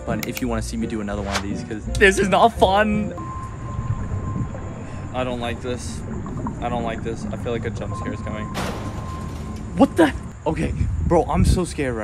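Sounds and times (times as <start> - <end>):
low steady rumbling: 0.5 - 11.1
faint steady tone: 1.8 - 10.4.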